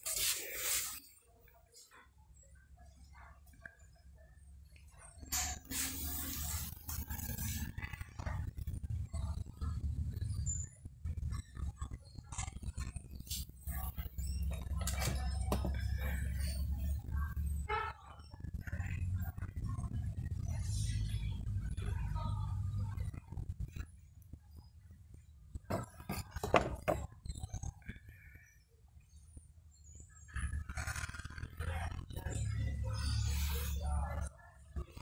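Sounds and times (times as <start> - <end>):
indistinct voices of shoppers: 0.0 - 10.8, 11.4 - 35.0
low rumble of shop: 0.0 - 35.0
store hubbub: 0.0 - 35.0.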